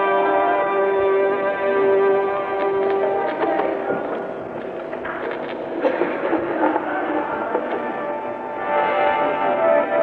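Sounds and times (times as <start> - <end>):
muffled devotional music: 0.0 - 10.0.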